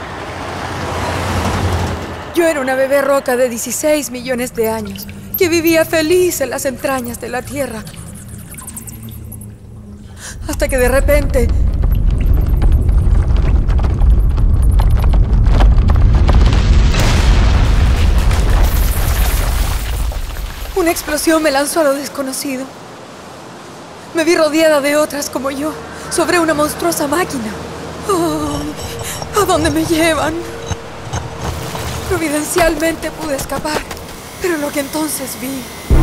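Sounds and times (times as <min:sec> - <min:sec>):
low steady rumble: 0:00.0 - 0:18.0
deep crackling rumble: 0:10.2 - 0:21.3, 0:28.3 - 0:34.4
loud explosion blast: 0:15.2 - 0:19.8.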